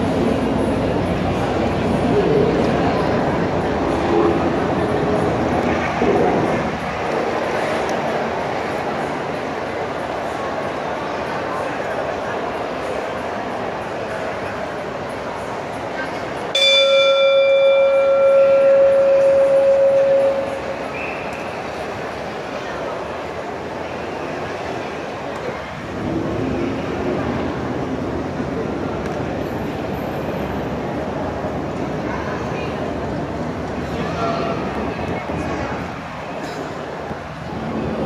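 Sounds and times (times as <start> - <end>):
large crowd din: 0.0 - 38.0
boxing ring bell ringing: 16.6 - 20.9.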